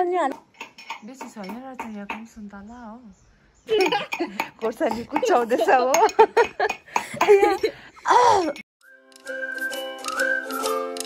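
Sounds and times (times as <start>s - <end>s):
metal utensils clinking on dishes: 4.9s - 6.8s.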